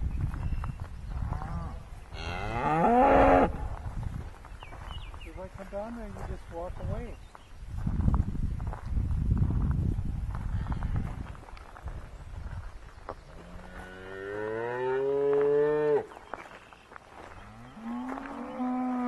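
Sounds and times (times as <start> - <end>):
cattle mooing: 2.2 - 3.6, 17.5 - 19.0.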